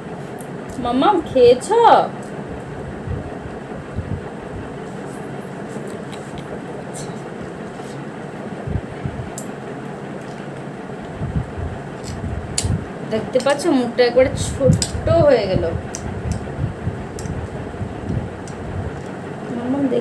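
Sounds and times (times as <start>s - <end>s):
cooling fan whooshing: 0.0s - 20.0s.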